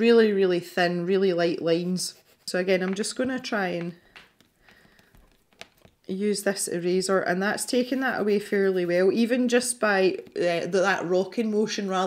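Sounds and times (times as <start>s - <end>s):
hand moving over paper: 1.6s - 6.1s.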